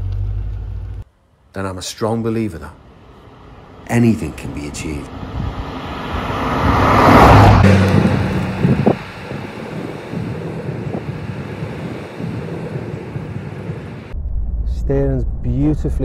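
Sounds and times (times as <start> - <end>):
car engine passing by: 2.8 - 14.2.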